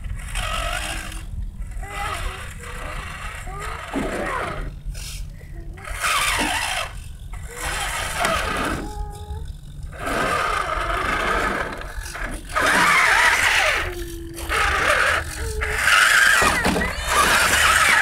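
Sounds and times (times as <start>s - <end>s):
electric motor whining: 0.0s - 18.0s
tyres scrabbling on loose rock: 15.9s - 18.0s.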